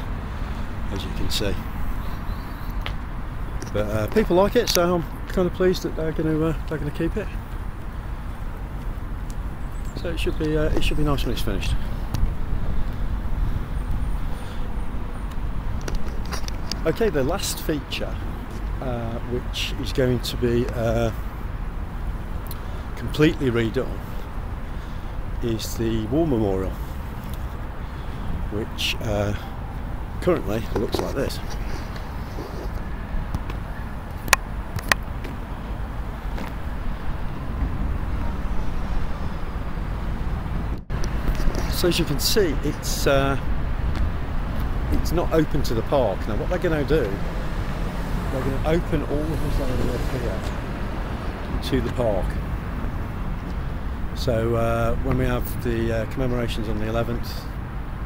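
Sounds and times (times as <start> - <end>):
road traffic rumble: 0.0 - 58.0
sharp clicks: 33.3 - 35.4.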